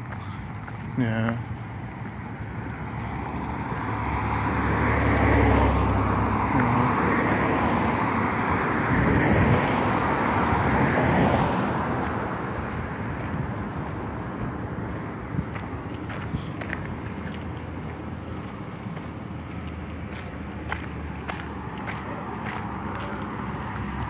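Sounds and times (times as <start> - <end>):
vehicles passing on street: 0.0 - 24.0.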